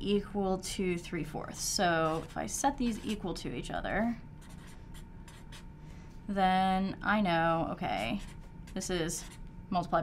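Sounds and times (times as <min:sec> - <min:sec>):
pen scratching on paper: 0:02.0 - 0:03.3, 0:04.4 - 0:05.6, 0:07.9 - 0:09.4.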